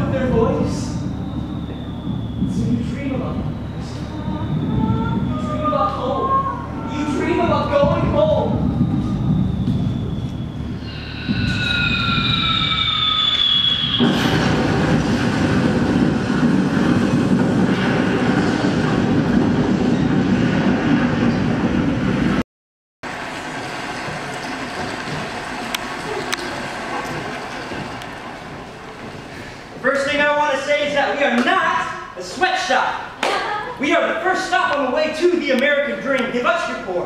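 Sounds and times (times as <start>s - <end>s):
high falling tone: 0.0s - 21.4s
train rumble sound effect: 0.0s - 22.4s, 23.0s - 29.8s.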